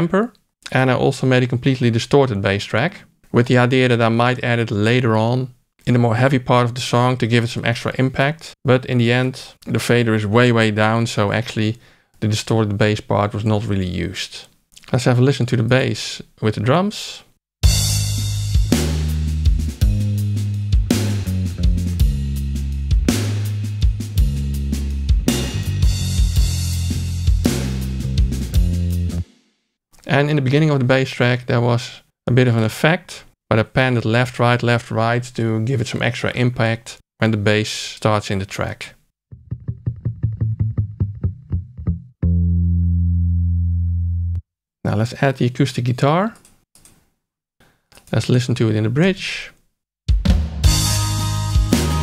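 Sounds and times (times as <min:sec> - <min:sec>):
bass guitar held notes: 0:17.6 - 0:29.2, 0:39.3 - 0:44.4, 0:50.7 - 0:52.0
sustained low bass note: 0:39.3 - 0:44.4
kick and snare drum hits: 0:50.1 - 0:50.9.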